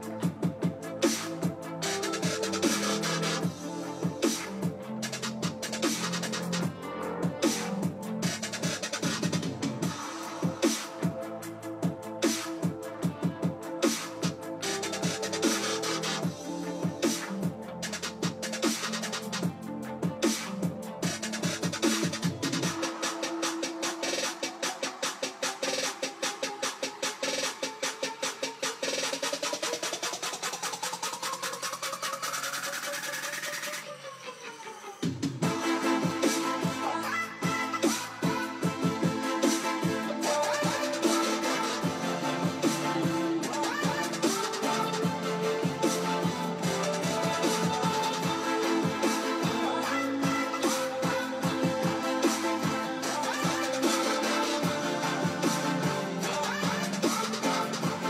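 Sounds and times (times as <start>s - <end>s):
electronic bass music with drums: 0.0s - 34.0s, 35.0s - 58.0s.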